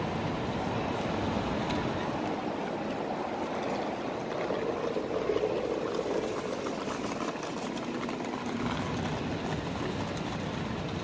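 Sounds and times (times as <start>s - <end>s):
city street traffic hum: 0.0s - 11.0s.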